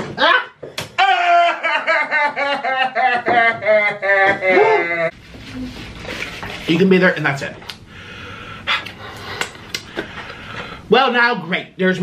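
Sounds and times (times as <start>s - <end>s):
person speaking: 6.4s - 7.7s
wet mouth clicks: 8.7s - 9.9s.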